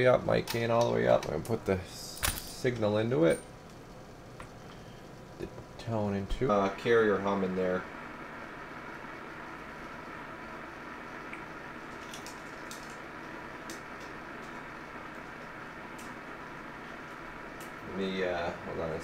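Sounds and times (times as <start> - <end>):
radio hum and hiss: 0.0 - 19.0.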